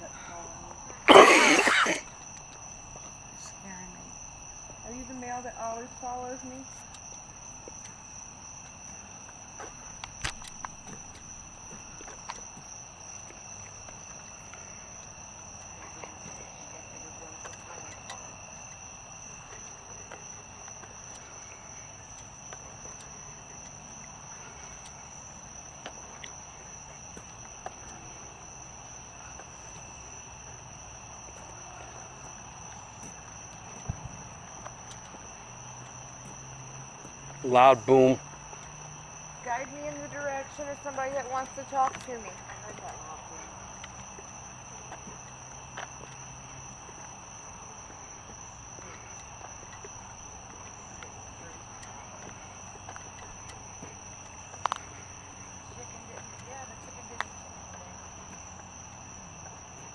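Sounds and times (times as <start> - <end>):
night insects chorus: 0.0 - 59.9.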